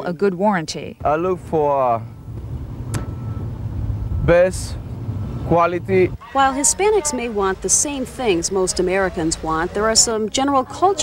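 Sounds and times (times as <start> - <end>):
street traffic rumble: 0.7 - 11.0.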